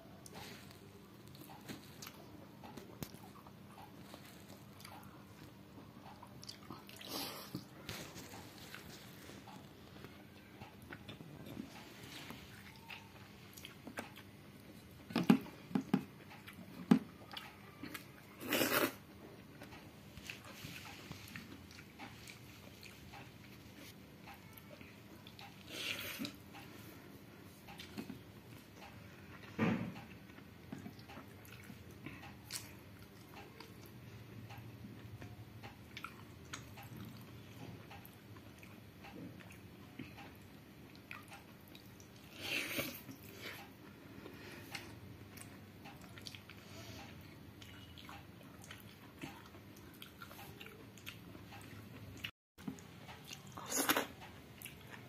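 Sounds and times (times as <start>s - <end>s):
soft chewing: 0.1s - 55.0s
wet squishing of food: 35.6s - 55.0s.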